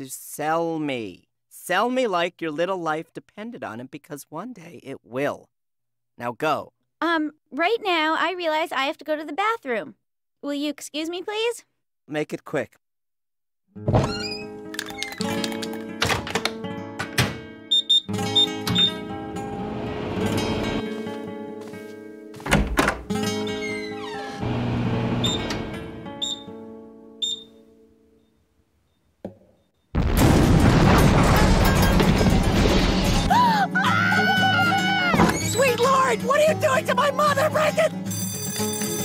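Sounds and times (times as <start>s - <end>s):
instrumental cartoon music: 13.8s - 24.5s, 31.5s - 39.0s.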